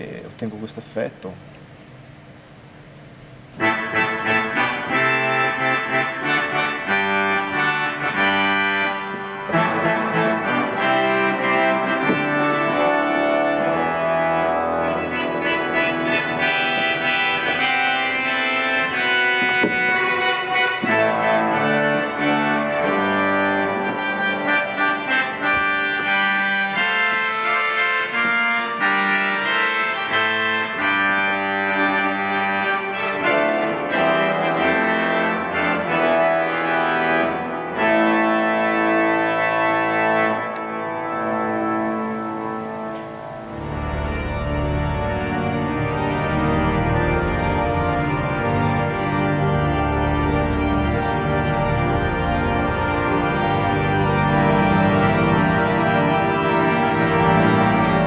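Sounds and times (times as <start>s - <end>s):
pipe organ playing fanfare chords: 1.8s - 58.0s.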